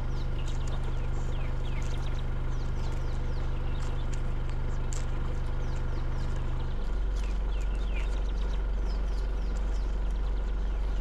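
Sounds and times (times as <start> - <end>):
birds whistling: 0.0 - 11.0
vehicle engine humming: 0.0 - 11.0.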